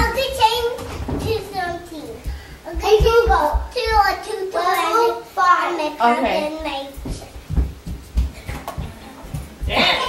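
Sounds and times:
child's feet thumping on rug: 0.0s - 4.2s, 6.6s - 10.0s.

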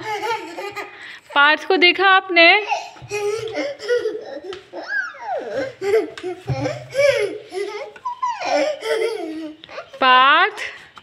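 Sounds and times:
toddler giggling and squealing: 2.6s - 10.0s.

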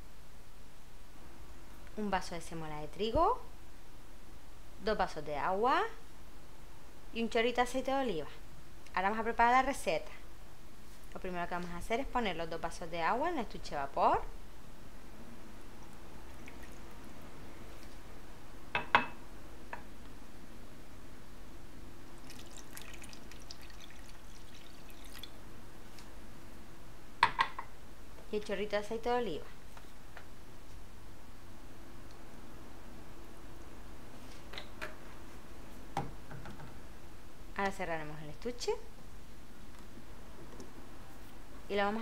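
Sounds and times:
water dripping: 15.8s - 17.1s, 22.2s - 25.4s
water pouring and trickling: 16.3s - 17.1s, 22.2s - 25.4s.

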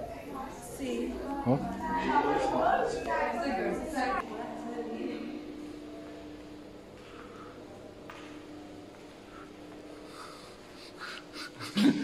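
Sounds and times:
person breathing: 7.0s - 7.8s, 9.2s - 11.8s.

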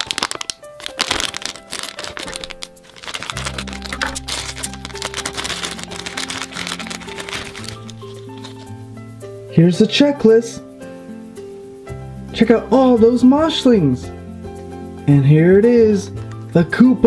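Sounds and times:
foil bag crinkling: 0.0s - 8.8s
background music: 0.0s - 17.0s.

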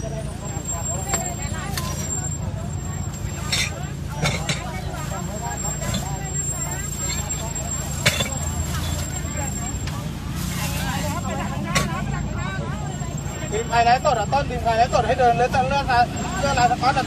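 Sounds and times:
crowd chatter: 0.0s - 17.0s
vehicle engine humming: 0.0s - 17.0s.

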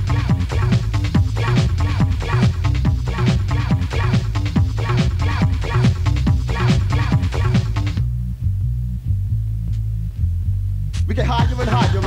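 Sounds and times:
electronic dance music: 0.0s - 8.0s, 11.0s - 12.0s
throbbing electronic bass line: 0.0s - 12.0s.

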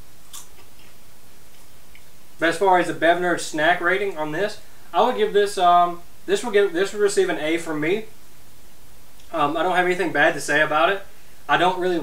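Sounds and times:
background hiss: 0.0s - 12.0s
person chewing popcorn: 0.2s - 2.2s.

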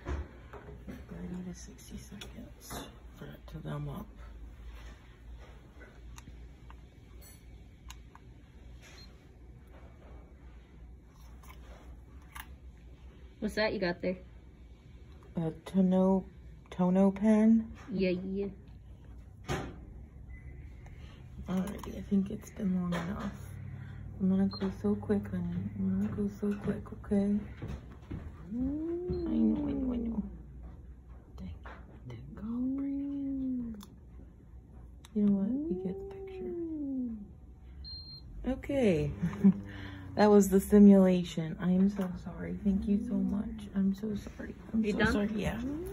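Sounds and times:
low steady hum: 0.0s - 45.9s.

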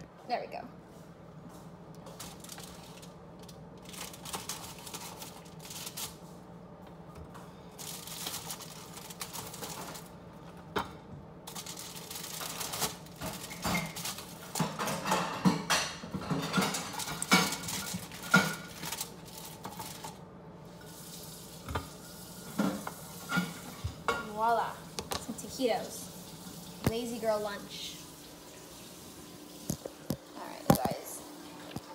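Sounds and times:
foil crinkling: 2.0s - 6.4s, 7.7s - 10.5s, 11.4s - 15.0s, 16.5s - 20.2s.

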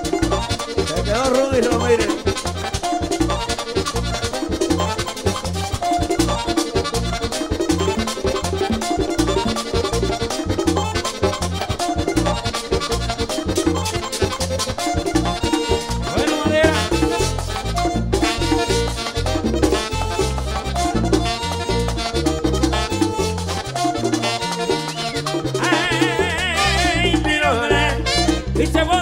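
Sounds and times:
wavering high melodic line: 0.0s - 3.6s, 13.4s - 27.7s
accordion: 0.0s - 29.0s
bass line: 0.0s - 29.0s
quick dance beat: 0.0s - 29.0s.

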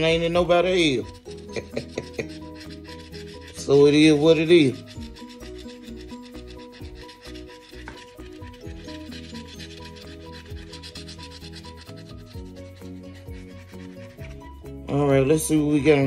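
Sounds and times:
scratch-off ticket being scratched: 0.0s - 14.7s.

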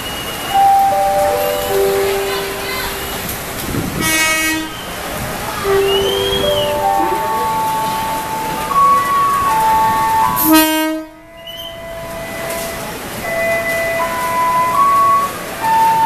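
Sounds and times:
busy station noise: 0.0s - 16.0s
steady tones: 0.5s - 12.6s
train horn blasts: 0.6s - 15.1s.

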